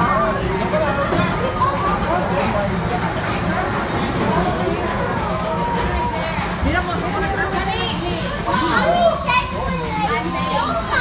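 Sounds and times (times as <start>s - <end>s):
children talking and calling out: 0.0s - 11.0s
people chattering: 0.0s - 11.0s.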